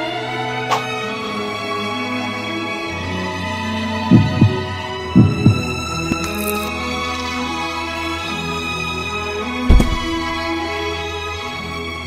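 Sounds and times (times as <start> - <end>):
soft sustained background music: 0.0 - 12.0
heartbeat thumps: 4.1 - 6.3, 9.7 - 10.4.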